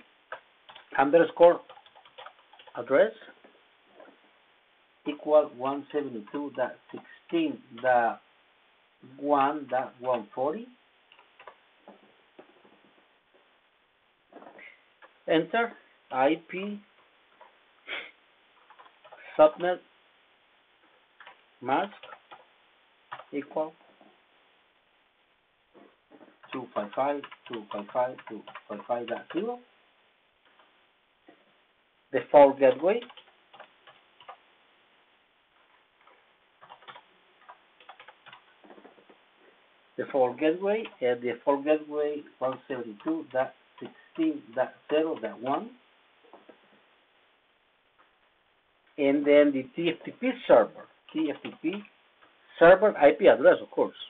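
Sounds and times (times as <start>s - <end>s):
computer keyboard typing clicks: 0.3s - 1.0s, 1.6s - 2.8s, 21.2s - 22.4s, 26.4s - 29.4s, 32.7s - 34.4s, 36.6s - 38.4s.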